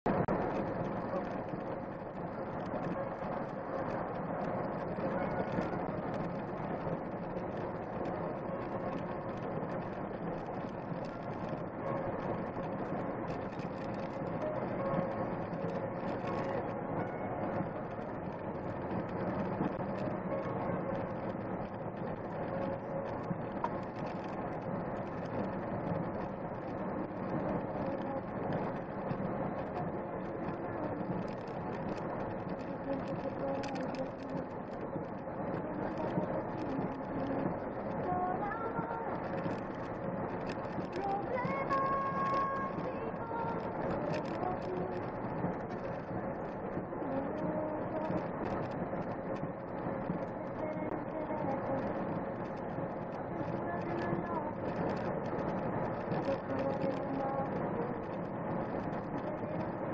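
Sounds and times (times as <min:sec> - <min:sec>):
vehicle road noise: 0:00.0 - 0:59.9
faint steady hum: 0:00.1 - 0:59.9.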